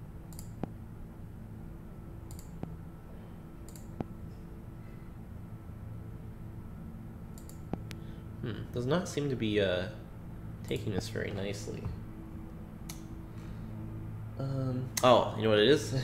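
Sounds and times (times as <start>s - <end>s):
steady low hum: 0.0s - 16.0s
computer mouse clicking: 0.3s - 0.7s, 2.3s - 2.8s, 3.6s - 4.1s, 7.4s - 8.0s.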